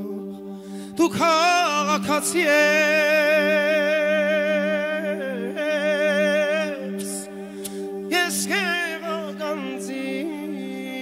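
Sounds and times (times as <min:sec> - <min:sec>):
man singing long notes with vibrato: 0:00.0 - 0:11.0.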